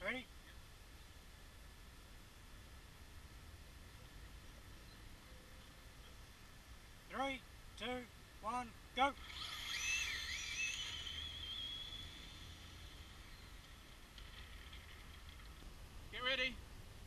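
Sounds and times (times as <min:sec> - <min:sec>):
short pitched calls: 0:07.8 - 0:15.3
electric toy car motor whining: 0:09.2 - 0:15.0.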